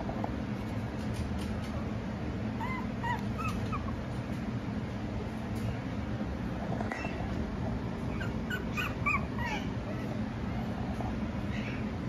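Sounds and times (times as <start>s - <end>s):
steady low hum: 0.0s - 12.0s
puppy whimpering: 2.6s - 4.1s, 8.0s - 11.9s.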